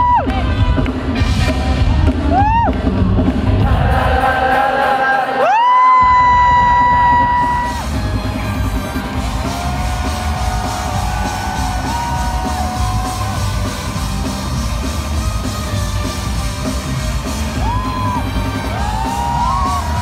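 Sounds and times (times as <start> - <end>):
band bass and drums: 0.0 - 4.2, 6.0 - 20.0
crowd yelling: 3.6 - 20.0.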